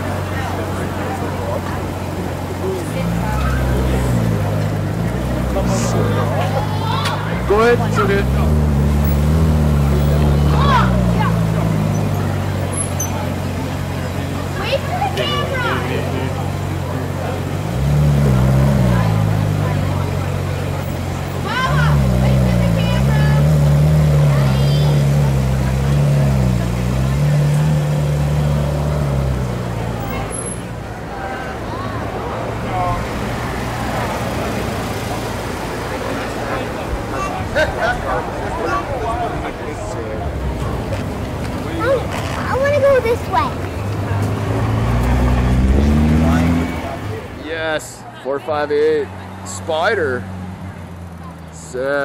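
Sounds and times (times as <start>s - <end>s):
car engine running at low revs: 0.0s - 15.1s, 15.8s - 31.0s, 39.1s - 47.4s
street noise: 0.0s - 52.0s.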